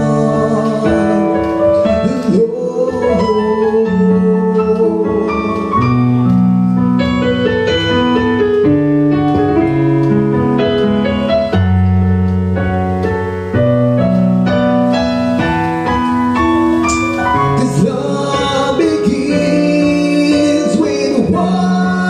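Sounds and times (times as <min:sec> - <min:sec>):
keyboard piano chords: 0:00.0 - 0:22.0.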